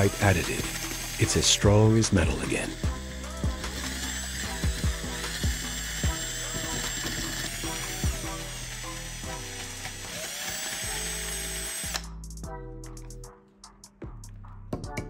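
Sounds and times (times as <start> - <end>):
cordless drill whining: 0.0 - 12.2.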